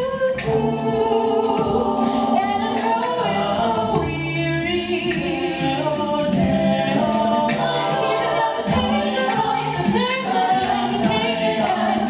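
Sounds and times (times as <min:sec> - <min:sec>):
a cappella backing harmonies: 0:00.0 - 0:12.0.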